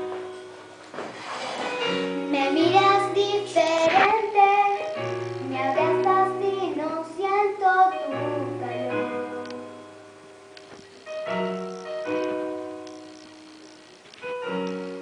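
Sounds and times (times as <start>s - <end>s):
piano accompaniment: 0.0s - 15.0s
girl singing pop ballad: 2.1s - 9.9s.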